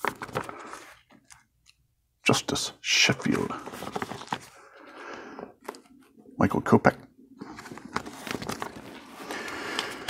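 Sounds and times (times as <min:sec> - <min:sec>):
plastic binder page crinkling: 0:00.0 - 0:01.4, 0:03.1 - 0:04.6, 0:07.4 - 0:10.0.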